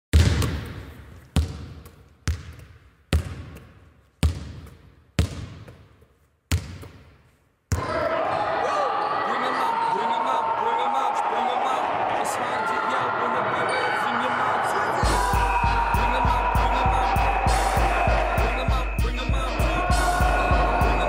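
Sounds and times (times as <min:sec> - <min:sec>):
basketball bouncing with echo: 0:00.1 - 0:08.0
din of a gymnasium game: 0:00.1 - 0:21.0
voices: 0:07.8 - 0:21.0.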